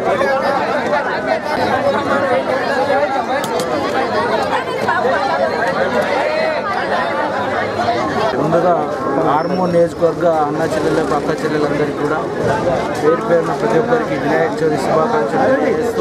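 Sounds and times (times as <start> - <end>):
crowd chatter: 0.0 - 16.0
man talking: 8.4 - 16.0.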